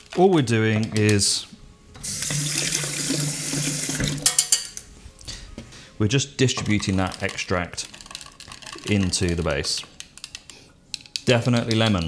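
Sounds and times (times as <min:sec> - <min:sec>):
water running from a tap: 0:02.0 - 0:04.3.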